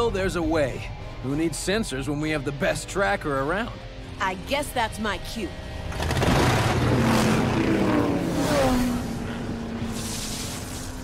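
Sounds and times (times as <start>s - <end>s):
cartoon buggy engine revving: 5.9s - 11.0s.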